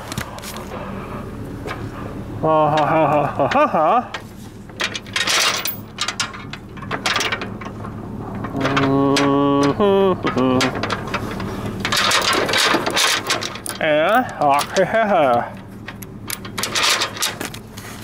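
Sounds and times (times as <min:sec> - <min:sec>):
low steady hum: 0:00.0 - 0:18.0
man laughing: 0:02.4 - 0:04.2, 0:08.6 - 0:10.8, 0:14.4 - 0:15.6
metal gate clanking: 0:04.8 - 0:17.6.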